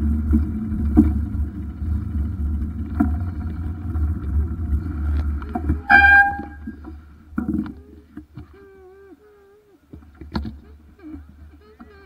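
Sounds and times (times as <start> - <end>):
low rumble: 0.0 - 7.9.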